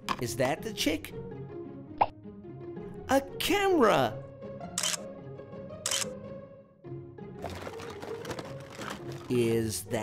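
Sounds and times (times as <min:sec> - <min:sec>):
background music: 0:00.0 - 0:10.0
camera shutter clicks: 0:04.8 - 0:05.1, 0:05.8 - 0:06.2.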